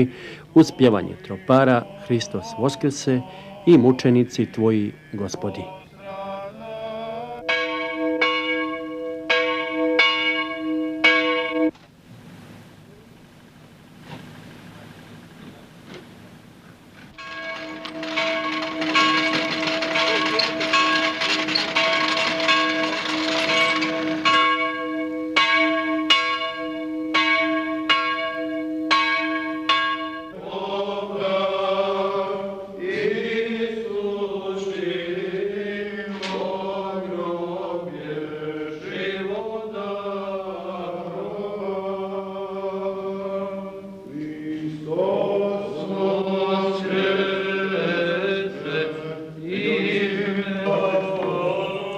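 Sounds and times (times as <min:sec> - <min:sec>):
men chanting: 0:00.0 - 0:07.5, 0:30.4 - 0:51.9
church bell tolling: 0:07.4 - 0:11.7, 0:17.1 - 0:31.2.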